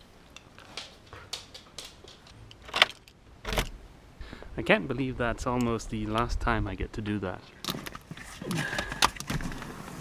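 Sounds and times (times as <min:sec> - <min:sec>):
lock clicks and rattles: 0:01.8 - 0:03.8.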